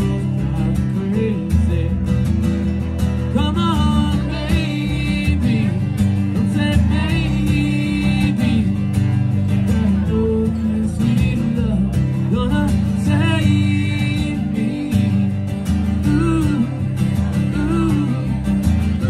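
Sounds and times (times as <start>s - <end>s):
acoustic guitar strumming: 0.0s - 19.0s
electric bass guitar line: 0.0s - 19.0s.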